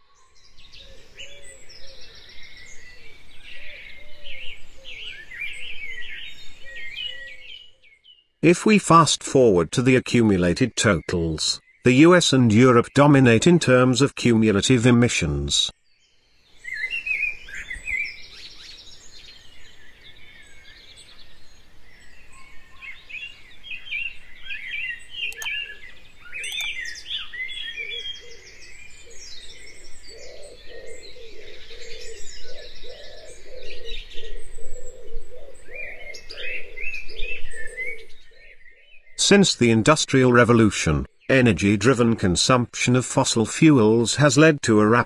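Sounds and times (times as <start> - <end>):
birds chirping and singing: 0.0 - 8.3, 9.8 - 15.0, 15.6 - 42.6.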